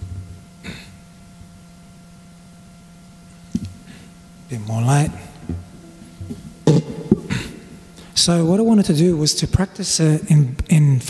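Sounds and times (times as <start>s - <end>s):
acoustic guitar strums: 5.0s - 8.1s.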